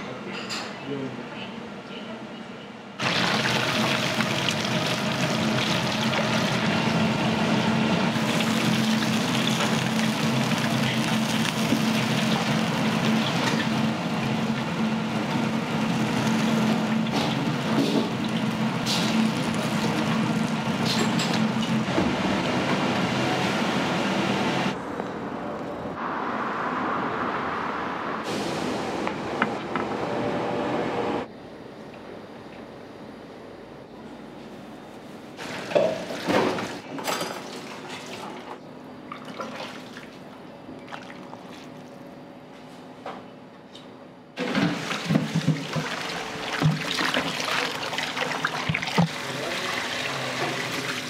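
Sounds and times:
chicken sizzling in hot oil: 3.0 - 7.2, 8.1 - 14.7.

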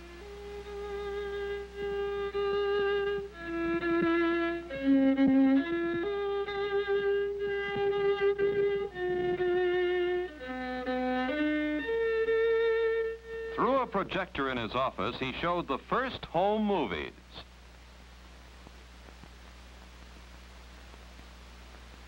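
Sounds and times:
solo violin melody: 0.0 - 13.7
faint low hum: 0.0 - 22.0.

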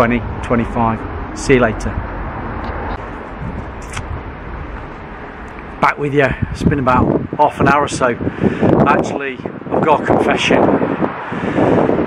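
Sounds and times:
low rumble: 0.0 - 7.4.

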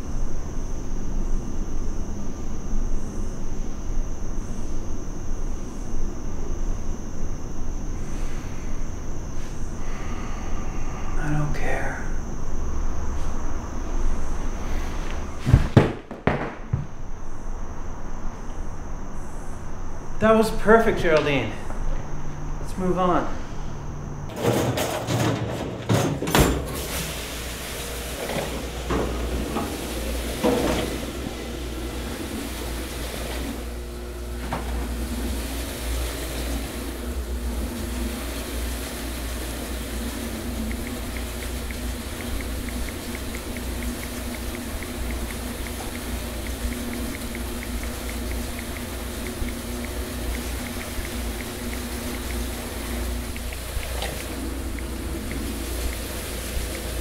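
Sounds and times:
low hum: 0.0 - 15.5, 27.2 - 57.0
water running into a metal sink: 26.2 - 33.8, 34.4 - 57.0
faint regular ticking: 40.5 - 57.0.

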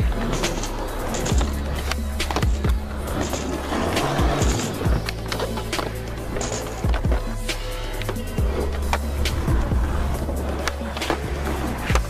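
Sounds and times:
backing music: 0.0 - 12.0
skateboard clacking: 0.0 - 12.0
skateboard wheels rolling on concrete: 0.0 - 12.0.

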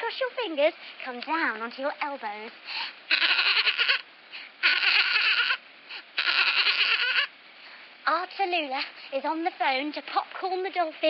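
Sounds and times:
dolphin chattering: 3.1 - 4.0, 4.6 - 5.6, 6.2 - 7.3.

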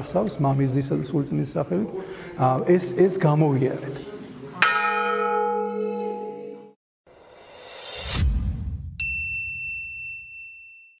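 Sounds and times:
bright ding: 9.0 - 11.0.

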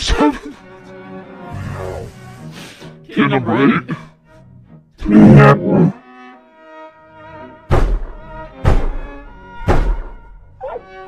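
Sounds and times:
sustained music tones: 0.5 - 11.0
heavy thuds: 7.7 - 10.3.

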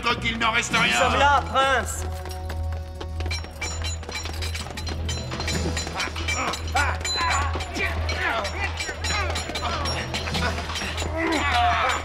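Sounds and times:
background music: 0.0 - 12.0
metal blades clashing: 4.3 - 12.0
men shouting: 5.8 - 12.0.

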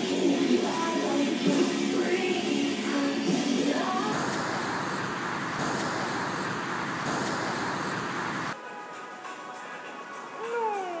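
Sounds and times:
road traffic: 3.8 - 8.6.

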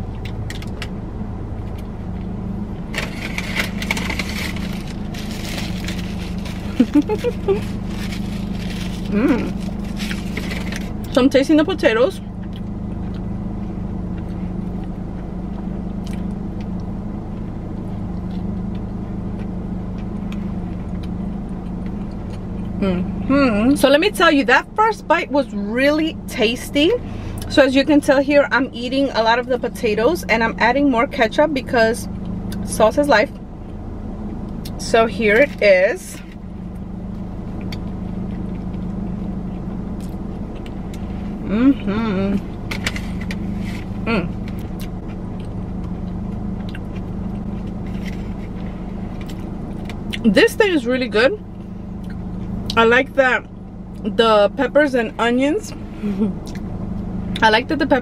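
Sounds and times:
low hum inside car: 0.0 - 58.0
faint chewing: 12.3 - 22.8, 42.9 - 50.2
person humming mm: 41.4 - 42.4, 44.0 - 44.4
chewing mouth clicks: 44.5 - 48.1.

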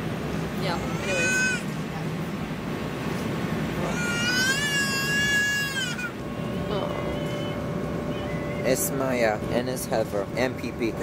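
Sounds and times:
airliner cabin drone: 0.0 - 11.0
baby squealing: 0.9 - 1.7, 3.8 - 6.2.

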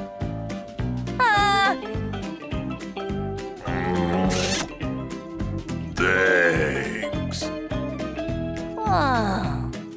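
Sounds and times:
background music: 0.0 - 9.9.

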